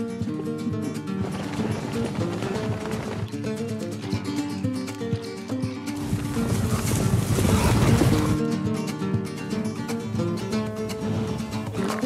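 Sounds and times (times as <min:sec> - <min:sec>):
guitar music: 0:00.0 - 0:12.0.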